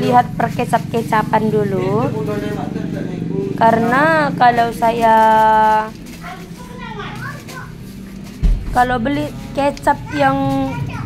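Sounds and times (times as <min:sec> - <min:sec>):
steady low hum: 0:00.0 - 0:07.1.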